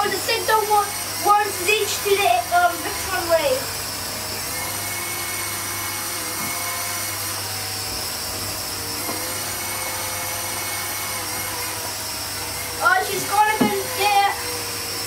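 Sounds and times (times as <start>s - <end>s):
toy flying disc motor whine: 0.0s - 15.0s.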